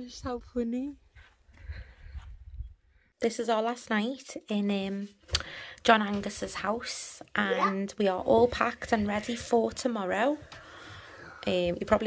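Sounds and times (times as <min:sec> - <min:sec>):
wind rumble on microphone: 0:01.5 - 0:02.9.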